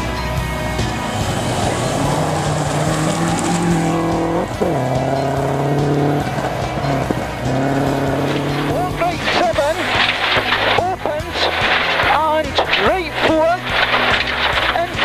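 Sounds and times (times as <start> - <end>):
rally car engine at high revs: 0.0 - 15.0.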